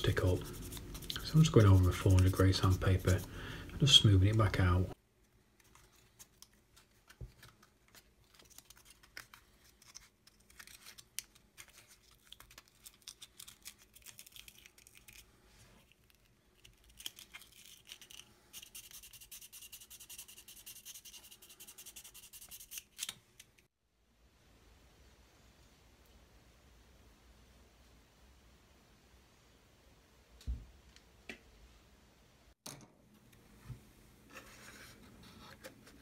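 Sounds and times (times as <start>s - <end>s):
sandpaper rubbing on wood: 0.2s - 3.3s, 18.6s - 22.8s.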